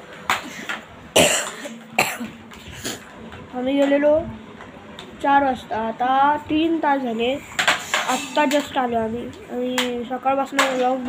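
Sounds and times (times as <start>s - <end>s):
boy coughing: 1.2s - 3.0s.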